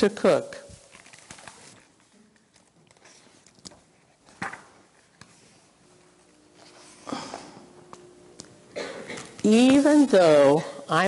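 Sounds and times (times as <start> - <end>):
book pages rustling: 0.7 - 5.7.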